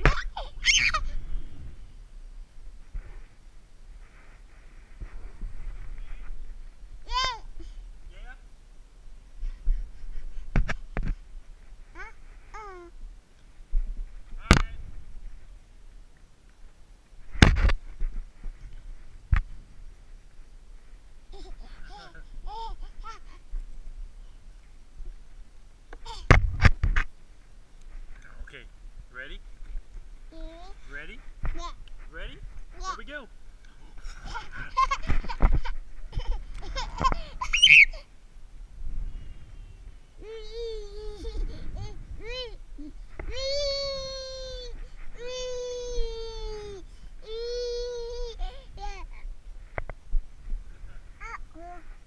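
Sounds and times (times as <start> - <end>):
child babbling: 7.1 - 7.5, 12.0 - 13.0, 30.3 - 30.9, 40.2 - 49.2, 51.2 - 51.9
thumps on camera microphone: 10.5 - 11.2, 13.7 - 15.0, 17.3 - 18.6, 26.3 - 27.1.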